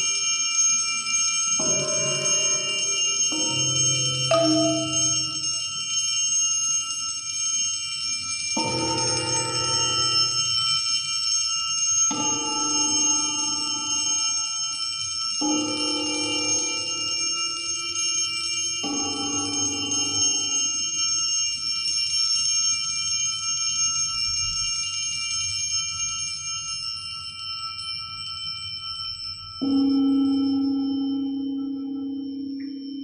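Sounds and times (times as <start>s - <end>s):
steady high ringing: 0.0s - 33.0s
mallets striking tuned metal discs: 1.6s - 6.0s.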